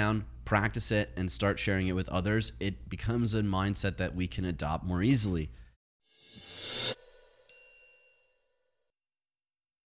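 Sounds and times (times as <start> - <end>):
high bell-like chime: 7.5 - 8.5.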